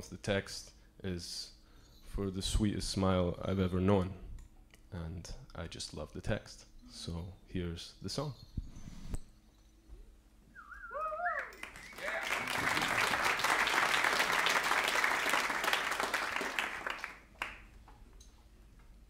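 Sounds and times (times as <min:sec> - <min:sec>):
person cheering in crowd: 0:11.0 - 0:13.1
audience applause: 0:11.4 - 0:17.7.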